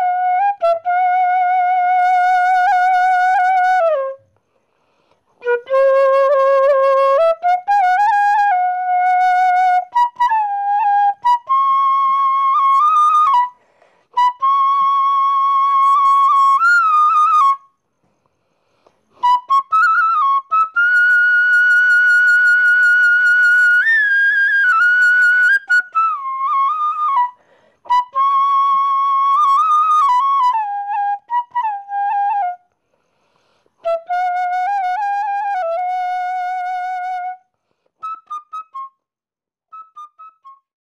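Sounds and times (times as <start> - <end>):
solo flute melody: 0.0 - 4.4, 5.3 - 17.8, 19.1 - 32.8, 33.8 - 40.8.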